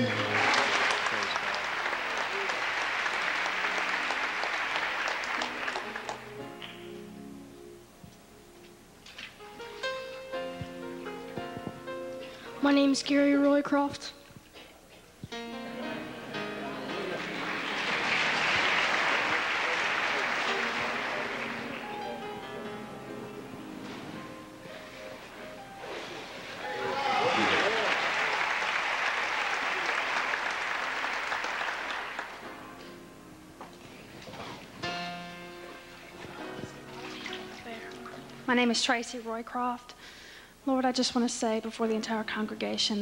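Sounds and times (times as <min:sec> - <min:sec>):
congregation applauding: 0:00.0 - 0:06.9, 0:16.4 - 0:22.7, 0:26.5 - 0:32.7
music: 0:00.0 - 0:14.4, 0:15.1 - 0:28.0, 0:32.1 - 0:39.4.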